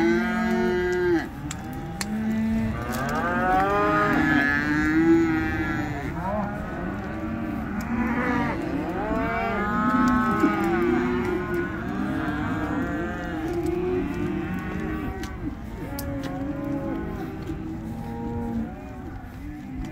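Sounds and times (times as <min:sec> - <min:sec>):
cattle mooing: 0:00.0 - 0:19.9.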